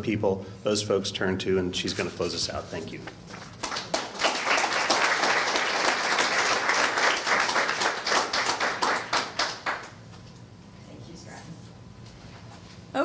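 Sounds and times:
audience applause: 0:03.6 - 0:10.0.

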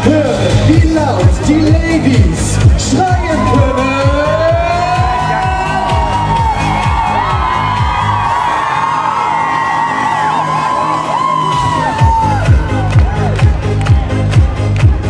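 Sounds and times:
dance-pop through a concert pa: 0:00.0 - 0:15.0
crowd cheering and whooping: 0:03.0 - 0:15.0.

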